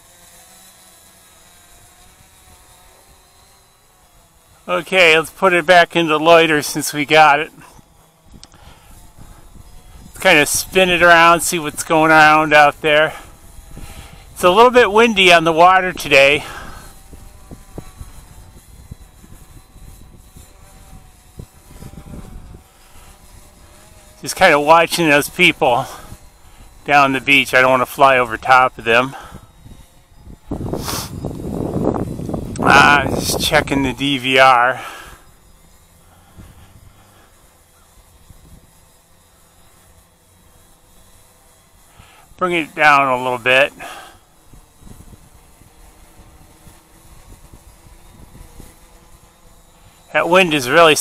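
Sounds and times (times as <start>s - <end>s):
faint steady whine: 0.0s - 51.0s
wind buffeting microphone: 7.8s - 27.3s, 28.3s - 37.2s, 37.8s - 39.0s, 44.4s - 50.0s.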